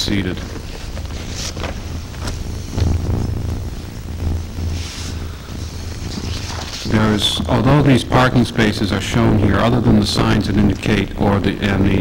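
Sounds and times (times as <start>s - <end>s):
steady low hum: 0.0s - 12.0s
paper rustling: 0.4s - 2.4s, 6.0s - 7.1s.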